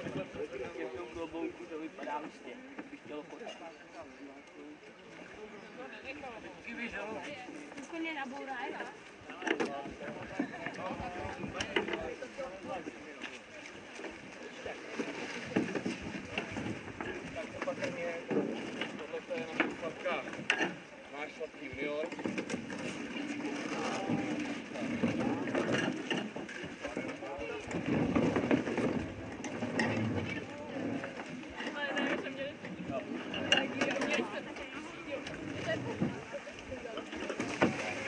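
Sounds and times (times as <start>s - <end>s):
canoe hull knocking and scraping: 0.0s - 3.6s, 6.2s - 38.0s.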